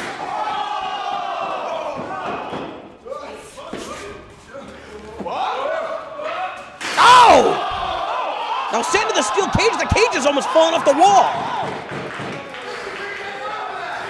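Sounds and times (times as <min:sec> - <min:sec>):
voices shouting: 0:06.8 - 0:11.8.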